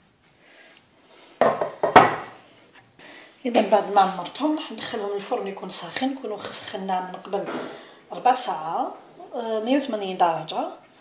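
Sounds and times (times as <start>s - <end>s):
kitchenware clattering: 1.4s - 2.3s.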